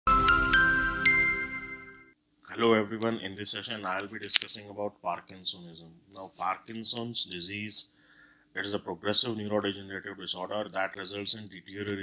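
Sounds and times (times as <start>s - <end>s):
held ringing chord: 0.1s - 2.2s
rising bell-like chimes: 0.1s - 2.2s.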